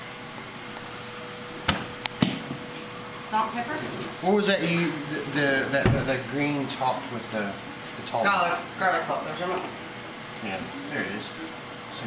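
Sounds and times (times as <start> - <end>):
faint kitchen hum: 0.0 - 12.0.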